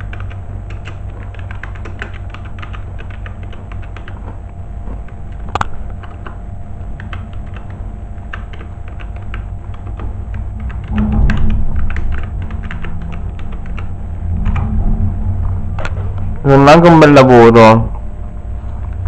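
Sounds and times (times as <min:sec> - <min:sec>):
computer keyboard typing: 0:00.0 - 0:14.6
low rumble: 0:10.3 - 0:19.0.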